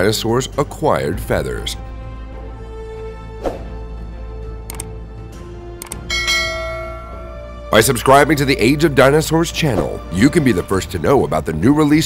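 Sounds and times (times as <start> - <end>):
background music: 0.0 - 12.0
notification bell chime: 6.1 - 7.4.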